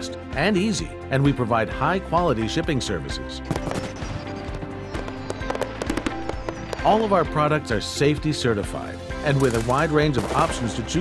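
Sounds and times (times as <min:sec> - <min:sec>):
background music: 0:00.0 - 0:11.0
fireworks bursting: 0:03.5 - 0:07.1.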